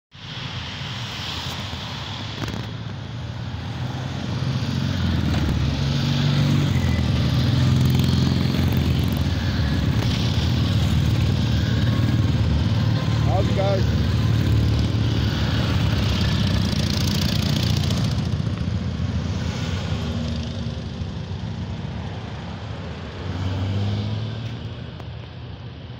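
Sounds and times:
motorcycle engines passing: 0:01.2 - 0:25.9.

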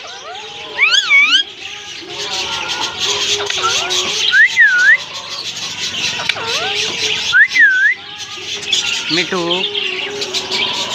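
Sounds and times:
parakeet whistling: 0:00.0 - 0:01.8, 0:03.0 - 0:10.7.

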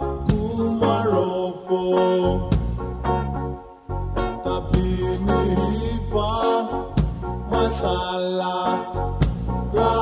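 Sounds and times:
pop song with person singing: 0:00.0 - 0:03.5, 0:04.2 - 0:10.0.

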